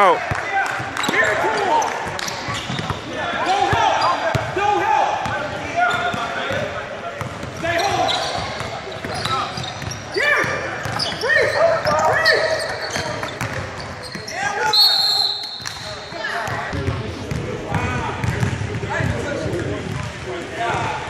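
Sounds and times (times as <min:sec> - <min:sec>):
players' voices echoing: 0:00.0 - 0:21.0
basketball dribbling: 0:07.2 - 0:14.3, 0:15.6 - 0:20.9
shoes squeaking on hardwood: 0:07.6 - 0:14.5.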